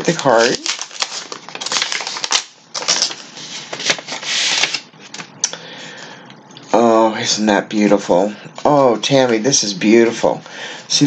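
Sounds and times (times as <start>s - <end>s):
paper crinkling and crackling: 0.0s - 5.3s
sliding paper rustle: 0.1s - 5.3s.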